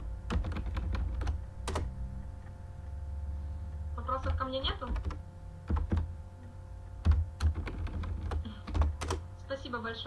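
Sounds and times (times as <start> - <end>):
low steady hum: 0.0 - 10.0
computer keyboard typing: 0.3 - 2.6, 4.1 - 6.1, 7.0 - 9.3.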